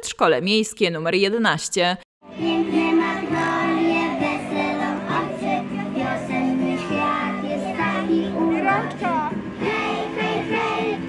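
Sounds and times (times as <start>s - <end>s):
musical backing: 2.2s - 11.0s
children singing: 2.3s - 11.0s.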